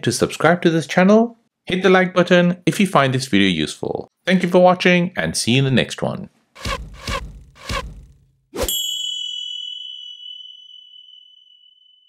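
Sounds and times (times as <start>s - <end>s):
sharp hit: 6.6s - 8.7s
clear ringing chime ding: 8.7s - 12.0s.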